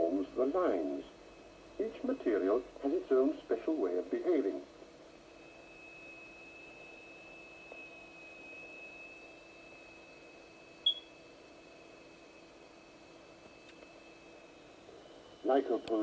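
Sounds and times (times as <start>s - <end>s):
low steady hum: 0.0s - 16.0s
high-pitched vibrating plate tone: 5.2s - 15.6s
short sharp beep: 10.8s - 11.2s.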